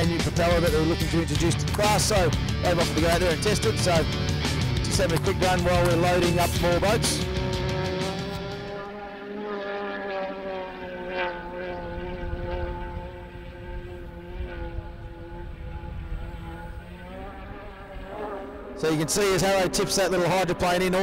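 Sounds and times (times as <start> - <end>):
hydroplane engine at high revs: 0.0 - 21.0.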